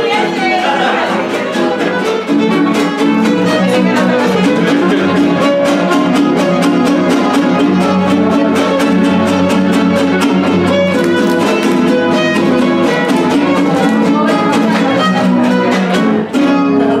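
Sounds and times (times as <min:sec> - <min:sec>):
fast guitar strumming: 0:00.0 - 0:17.0
violin melody: 0:00.0 - 0:17.0.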